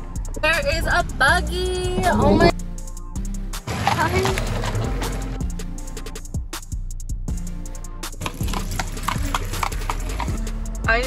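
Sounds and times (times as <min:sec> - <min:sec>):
horse hooves clip-clopping on road: 0:03.6 - 0:05.5, 0:08.2 - 0:10.6.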